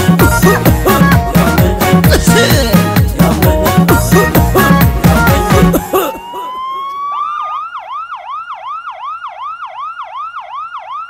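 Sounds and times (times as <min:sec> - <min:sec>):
music: 0:00.0 - 0:06.0
electronic siren yelping: 0:04.6 - 0:11.0.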